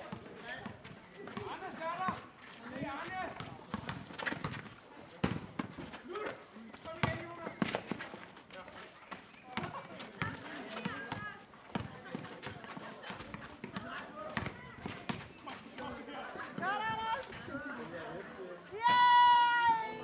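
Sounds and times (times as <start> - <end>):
basketball bouncing on pavement: 0.0 - 8.2, 9.1 - 15.6.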